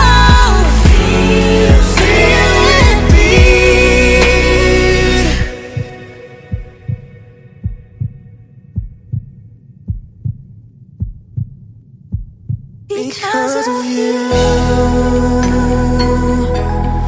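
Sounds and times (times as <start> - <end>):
heartbeat sound effect: 0.3 - 4.4, 5.5 - 12.9.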